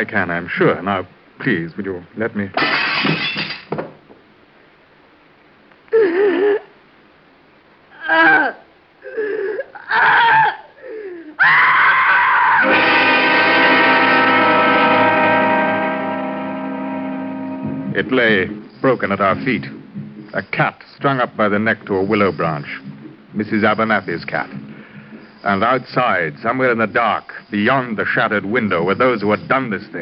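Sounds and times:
glass breaking crash: 2.6 - 3.8
wavering vocal cries: 7.9 - 12.7
dramatic music chord: 12.6 - 18.2.

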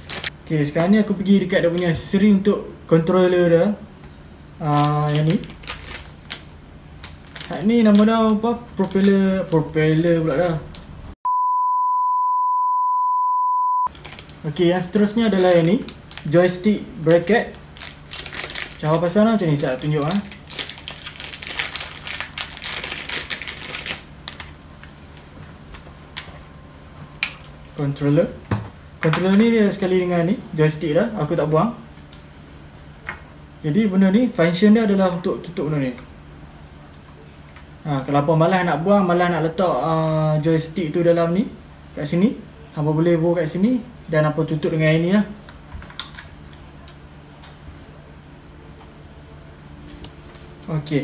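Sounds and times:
plastic bag crinkling: 0.0 - 0.3, 4.6 - 8.2, 13.9 - 24.9.

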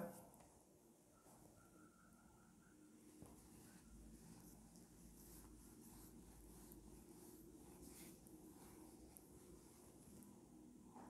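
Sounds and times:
cloth rubbing on whiteboard: 3.1 - 10.6.

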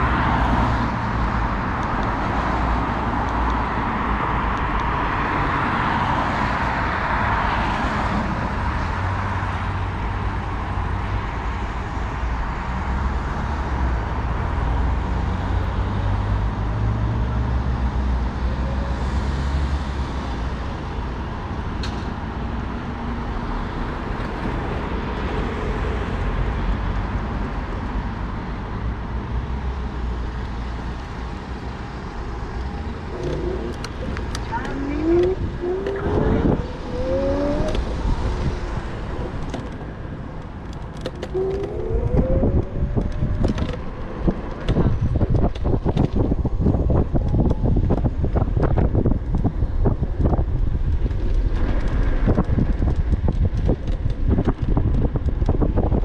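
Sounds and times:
cars passing: 0.0 - 56.0
low traffic rumble: 0.0 - 56.0
electric scooter motor whine: 41.3 - 44.0.

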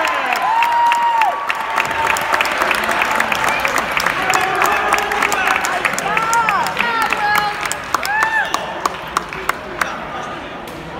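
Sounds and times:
spectators clapping: 0.0 - 10.2.

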